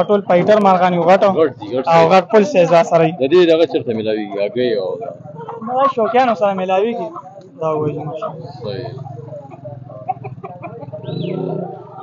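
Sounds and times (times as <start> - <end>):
chicken clucking: 0.0 - 12.0.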